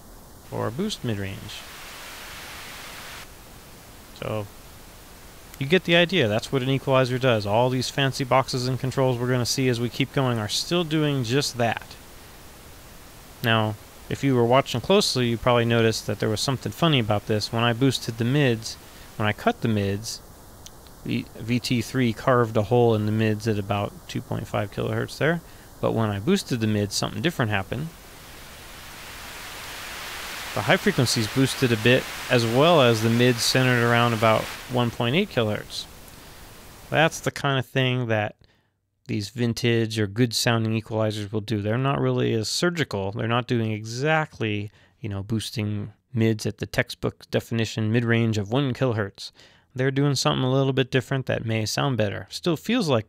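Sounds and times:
pink noise hiss: 0.0 - 38.0.

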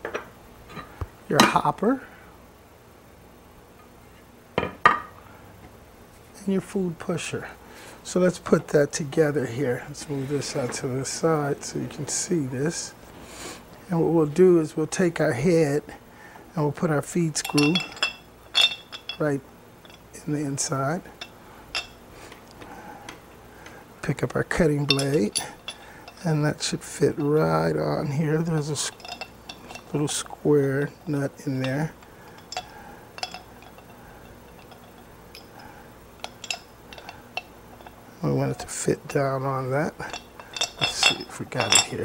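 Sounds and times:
metal grinder parts clinking: 17.4 - 22.0, 24.5 - 42.0.

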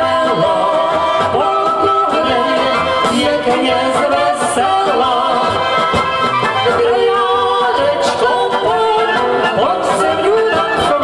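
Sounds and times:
band accompaniment: 0.0 - 11.0
people singing in harmony: 0.0 - 11.0.

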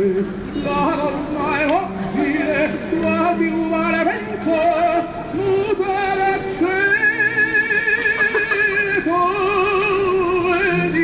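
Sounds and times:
person singing with vibrato: 0.0 - 11.0
recorded music: 0.0 - 11.0.

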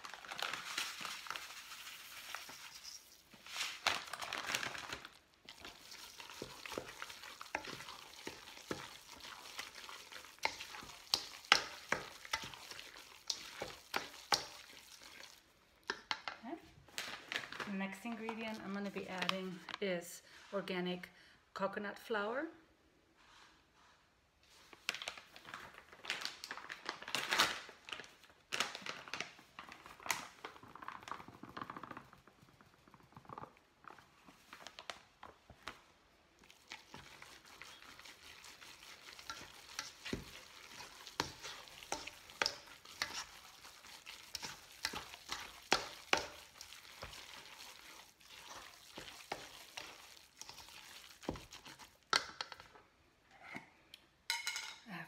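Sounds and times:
batter rustling and squelching: 0.0 - 16.0, 16.8 - 19.8, 24.4 - 52.8.

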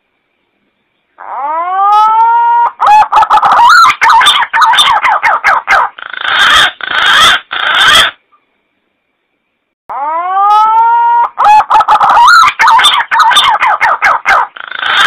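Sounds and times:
recorded pigeon call: 1.2 - 8.2, 9.9 - 15.0.

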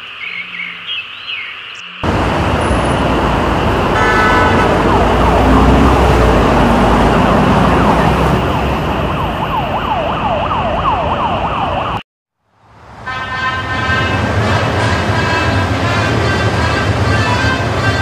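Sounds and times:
city street traffic: 1.8 - 18.0
vehicle horn blaring: 2.0 - 5.7, 13.0 - 18.0
emergency siren wailing: 2.0 - 12.0.

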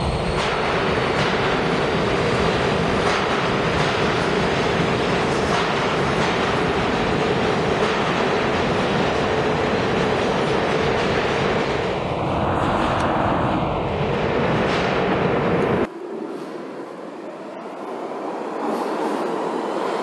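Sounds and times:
subway train wheels rumbling: 0.0 - 20.0.

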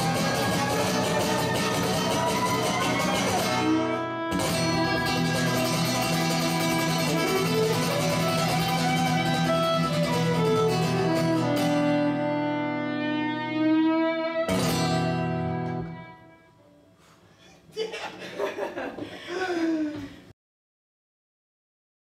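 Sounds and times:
acoustic guitar strumming: 0.0 - 16.5
bowed violin melody: 0.0 - 16.8.

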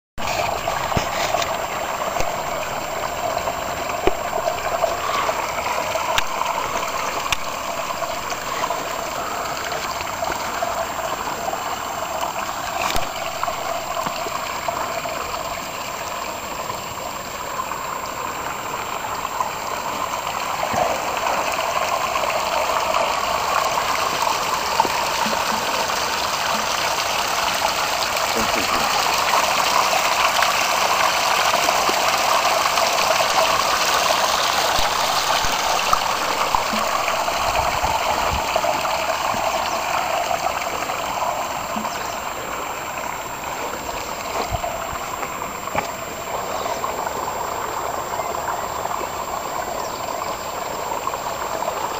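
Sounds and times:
water splashing down stone waterfall: 0.2 - 47.6.

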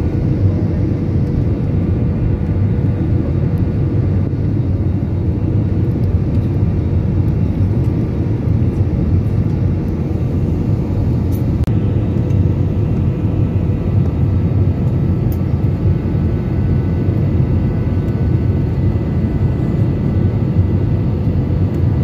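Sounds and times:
airliner cabin rumble: 0.0 - 22.0.

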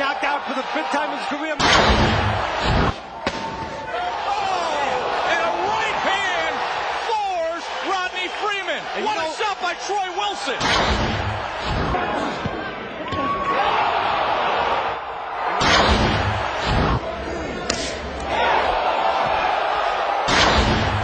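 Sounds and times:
crowd shouting: 0.0 - 21.0.

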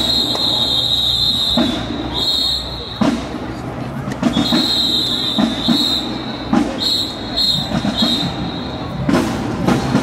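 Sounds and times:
whistle blast: 0.0 - 3.2, 4.3 - 9.1.

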